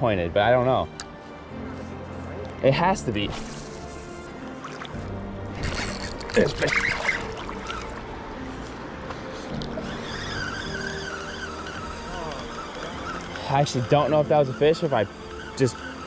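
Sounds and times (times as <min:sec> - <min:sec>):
background music held tones: 0:00.0 - 0:16.0.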